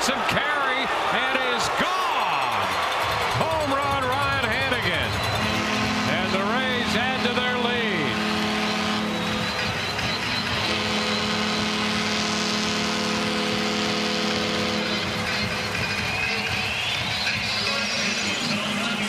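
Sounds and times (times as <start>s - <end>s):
crowd noise: 0.0s - 19.0s
music over loudspeakers: 14.8s - 19.0s.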